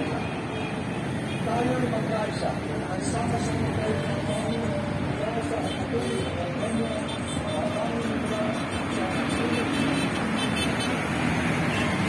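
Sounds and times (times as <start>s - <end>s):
highway traffic: 0.0s - 12.0s.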